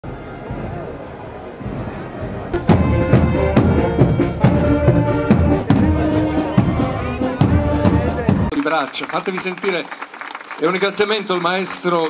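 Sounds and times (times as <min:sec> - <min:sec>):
band music with steady drum beat: 0:02.6 - 0:08.6.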